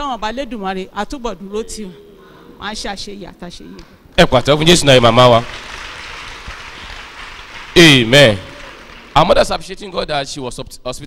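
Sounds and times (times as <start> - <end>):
congregation clapping: 4.2 - 10.1.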